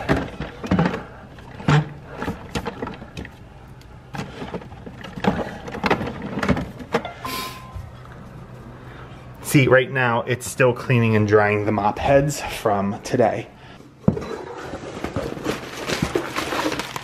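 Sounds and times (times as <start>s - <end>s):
low steady hum: 0.0s - 14.1s
short beep: 7.2s - 8.0s.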